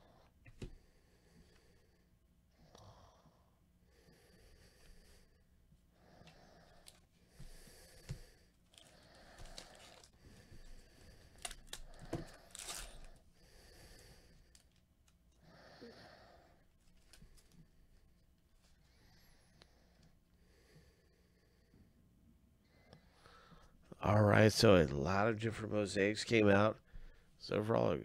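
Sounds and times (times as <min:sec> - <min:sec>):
soft breaths: 0:00.0 - 0:24.1, 0:26.8 - 0:27.5.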